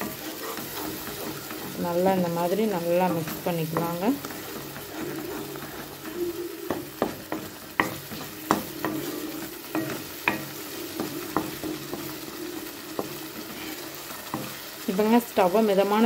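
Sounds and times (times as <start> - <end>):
faint sizzle: 0.0 - 16.0
wooden spatula scraping a pan: 0.0 - 16.0.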